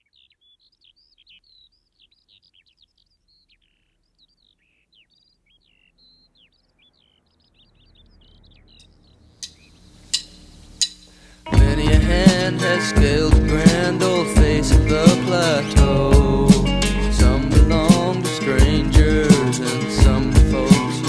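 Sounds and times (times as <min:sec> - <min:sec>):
birds chirping: 0:00.0 - 0:21.0
low rumble: 0:07.4 - 0:10.8, 0:11.5 - 0:13.8, 0:15.8 - 0:17.9
sharp click: 0:09.4 - 0:11.1.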